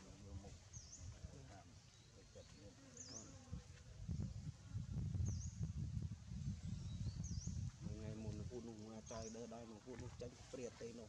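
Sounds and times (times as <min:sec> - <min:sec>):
flying insect buzzing: 0:02.7 - 0:06.6.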